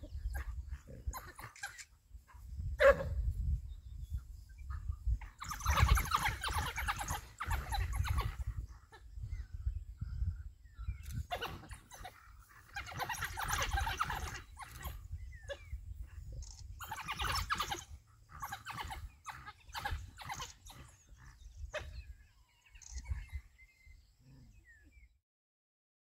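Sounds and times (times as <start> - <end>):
wild dogs chirping: 0.0 - 25.2.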